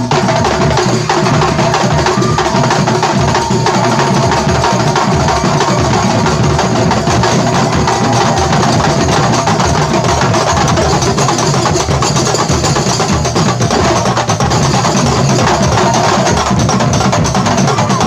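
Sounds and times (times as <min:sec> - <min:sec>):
barrel drums: 0:00.0 - 0:18.0
frame drums: 0:00.0 - 0:18.0
large bass drums: 0:00.0 - 0:18.0.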